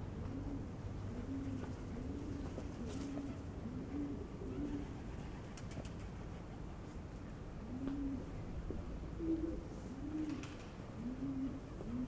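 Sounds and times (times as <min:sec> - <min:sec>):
pigeon cooing: 0:00.2 - 0:05.0, 0:07.6 - 0:08.3, 0:09.2 - 0:12.0.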